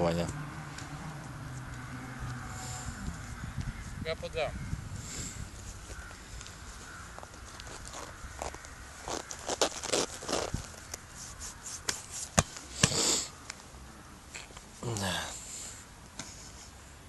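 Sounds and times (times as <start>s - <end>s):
bare feet crunching in sand: 5.6s - 12.5s.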